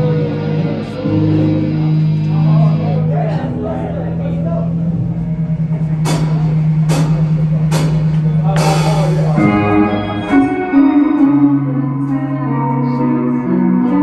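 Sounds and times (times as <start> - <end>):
rock band playing: 0.0 - 14.0
sharp drum hits: 6.0 - 10.4.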